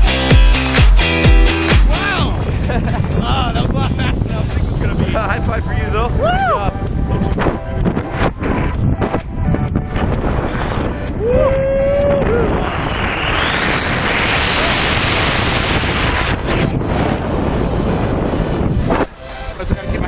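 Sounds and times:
wind buffeting microphone: 1.9 - 20.0.

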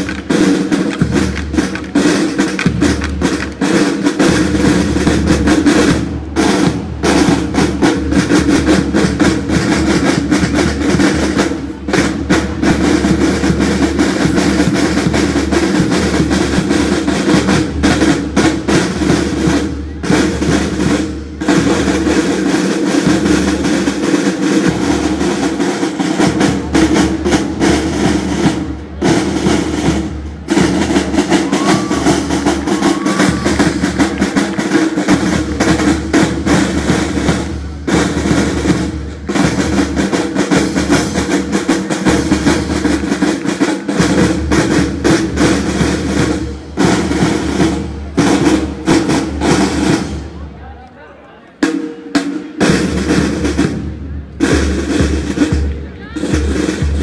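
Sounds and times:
snare drums playing in unison: 0.0 - 50.7, 51.6 - 57.0.

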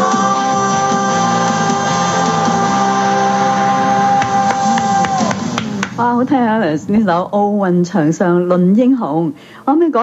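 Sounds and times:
pop-rock song: 0.0 - 5.9.

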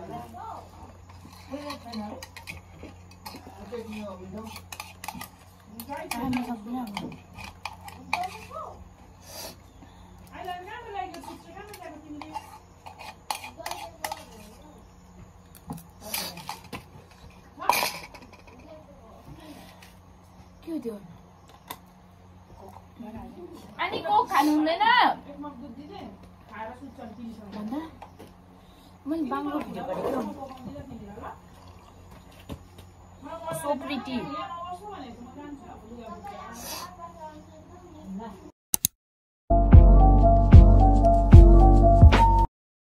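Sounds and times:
sharp click: 38.7 - 39.0.

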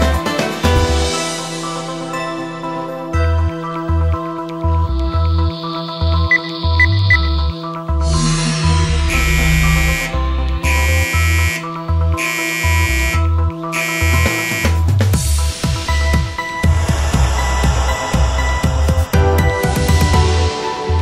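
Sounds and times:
electronic music with bass beat: 0.0 - 21.0
alarm buzzer beeps: 6.1 - 14.8.

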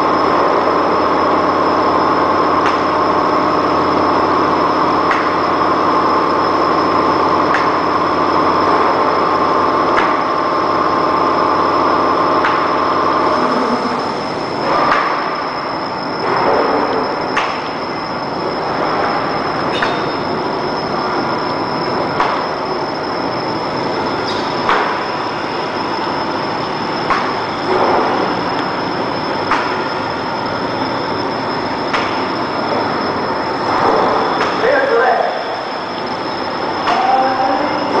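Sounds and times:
laminator machine hum and whine: 0.0 - 38.0
lower machine hum: 0.0 - 38.0.

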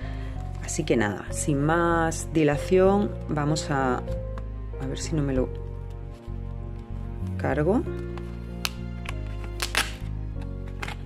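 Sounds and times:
background music with held chords: 0.0 - 11.0
paper envelope tearing: 8.2 - 11.0.

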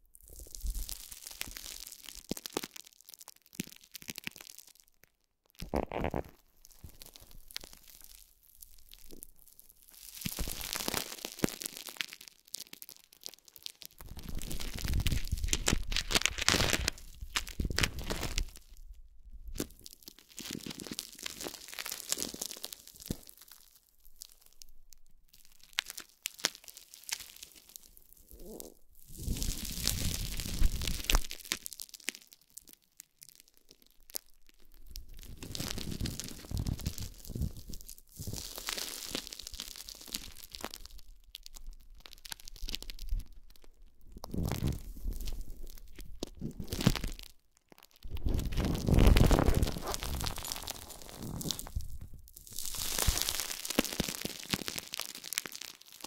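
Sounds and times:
plastic wrap crinkling: 5.6 - 18.9, 19.6 - 24.7, 25.3 - 56.0.

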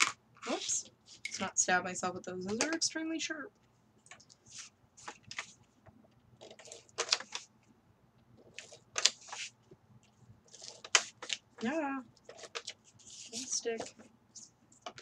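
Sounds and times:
paper rustling and scraping: 4.4 - 5.6, 8.4 - 9.6, 10.5 - 15.0.

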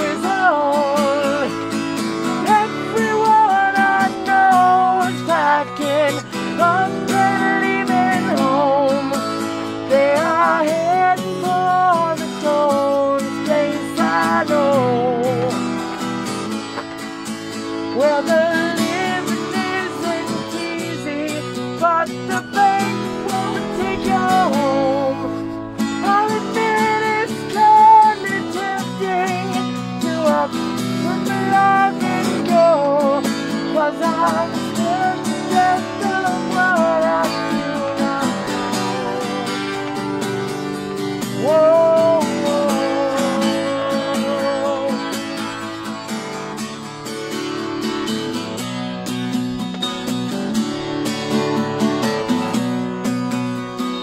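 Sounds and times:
man singing through a mask: 0.0 - 16.3, 17.8 - 45.9
acoustic guitar strumming: 0.0 - 54.0.

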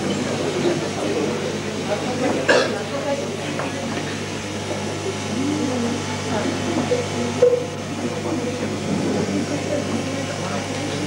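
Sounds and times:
indistinct chatter of crowd: 0.0 - 11.0.

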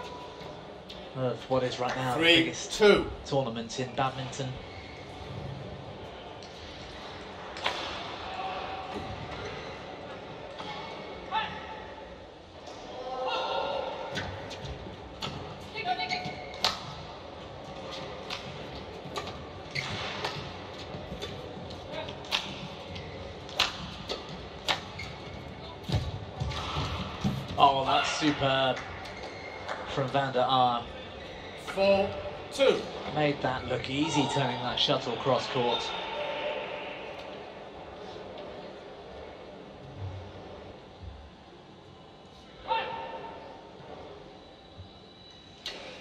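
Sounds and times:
racket striking shuttlecock: 23.5 - 24.9.

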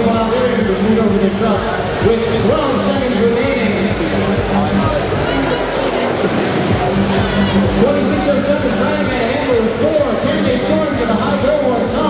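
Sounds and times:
background music: 0.0 - 12.0
crowd voices: 0.0 - 12.0.

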